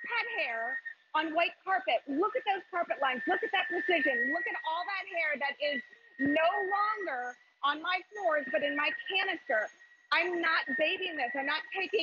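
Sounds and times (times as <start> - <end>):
person talking fast: 0.0 - 12.0.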